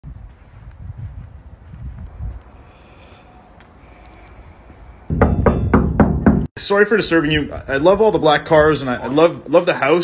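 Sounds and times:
knocking on glass door: 0:05.1 - 0:06.5.

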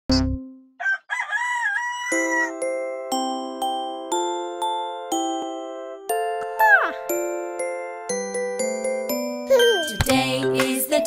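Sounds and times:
rooster crowing: 0:00.8 - 0:02.6.

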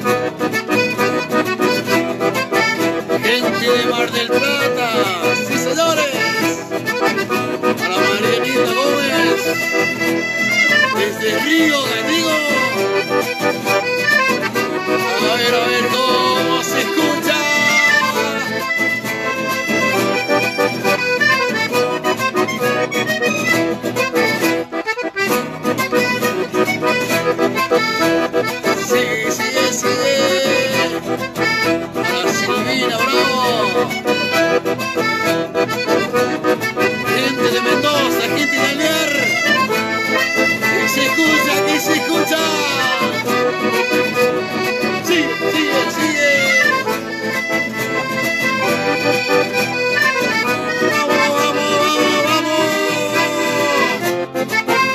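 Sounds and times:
acoustic guitar: 0:00.0 - 0:54.9
button accordion: 0:00.0 - 0:54.9.

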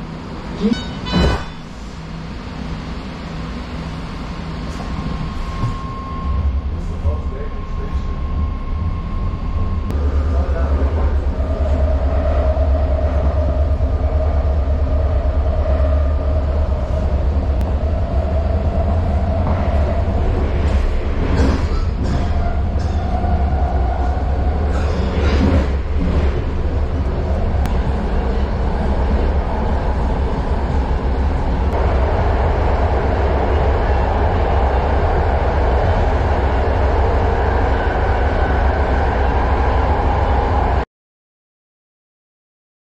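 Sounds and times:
train wheels rumbling on rail: 0:00.0 - 0:40.8
wavering whine: 0:04.7 - 0:20.8.

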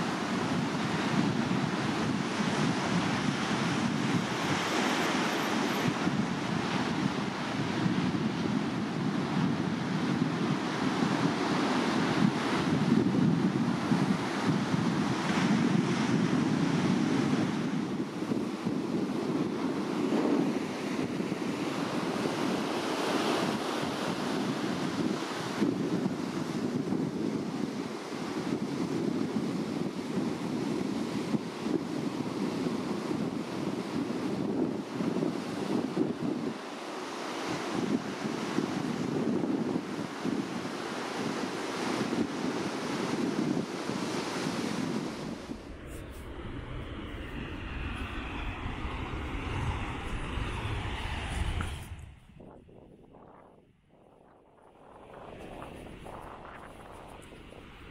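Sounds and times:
ocean surf breaking: 0:00.0 - 0:24.8, 0:33.0 - 0:52.4
wind buffeting microphone: 0:00.0 - 0:36.7, 0:37.4 - 0:57.9
low rumble: 0:45.1 - 0:53.9.

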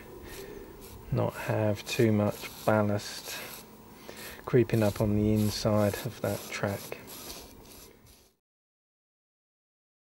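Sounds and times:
paintbrush sweeping grains: 0:00.0 - 0:08.4.

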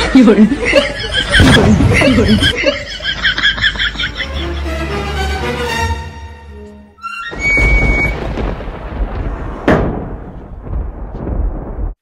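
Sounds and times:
people chuckling and snickering: 0:00.0 - 0:04.9.

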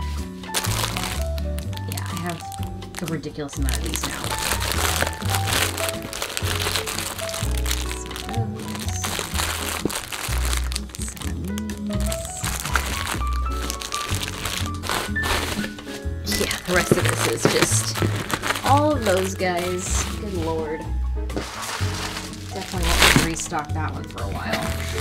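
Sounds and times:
background music with bass line: 0:00.0 - 0:25.0
plastic packaging crinkling: 0:00.0 - 0:25.0.

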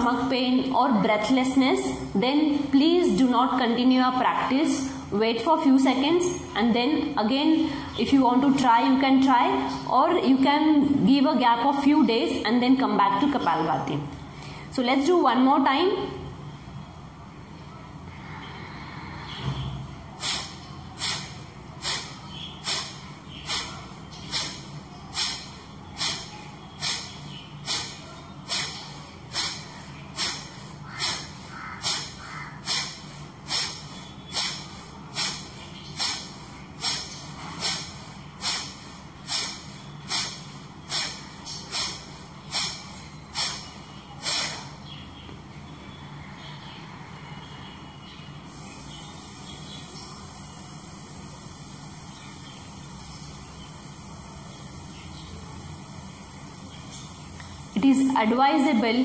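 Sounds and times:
woman forceful nasal exhalations: 0:20.2 - 0:44.8.

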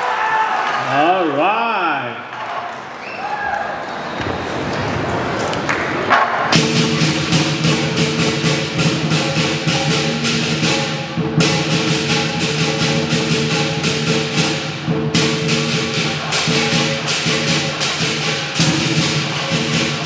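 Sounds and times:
drum cymbals and gong beat: 0:06.6 - 0:20.0.

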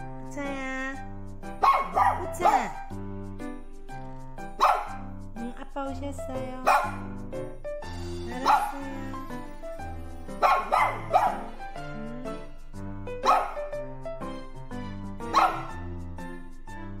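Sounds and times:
background music: 0:00.0 - 0:17.0
dog barking: 0:01.6 - 0:02.8, 0:04.6 - 0:05.0, 0:06.6 - 0:07.1, 0:08.4 - 0:08.9, 0:10.4 - 0:11.6, 0:13.2 - 0:13.7, 0:15.3 - 0:15.8.

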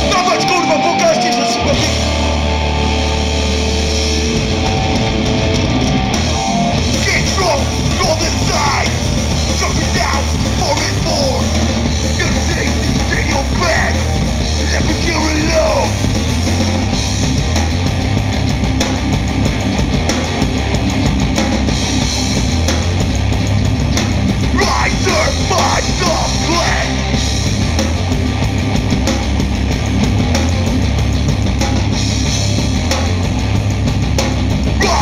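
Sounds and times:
bass guitar: 0:00.0 - 0:35.0
distorted electric guitars: 0:00.0 - 0:35.0
drums: 0:00.0 - 0:35.0
shouted vocals: 0:06.9 - 0:16.0, 0:24.5 - 0:27.2, 0:34.8 - 0:35.0.

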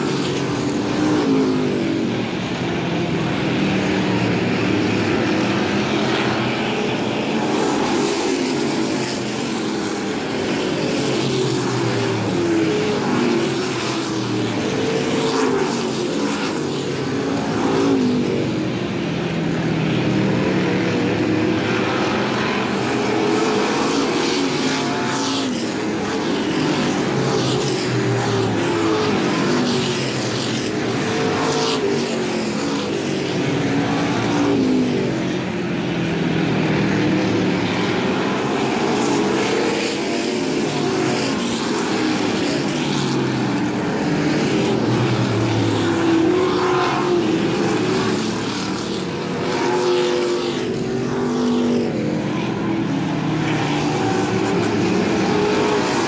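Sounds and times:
race car engines at full throttle: 0:00.0 - 0:56.0.

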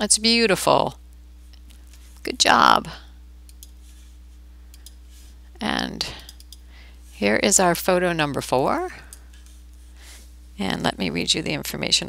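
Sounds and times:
steady low hum: 0:00.0 - 0:12.0
computer mouse clicks: 0:03.5 - 0:03.8, 0:04.7 - 0:05.0, 0:06.2 - 0:06.6.

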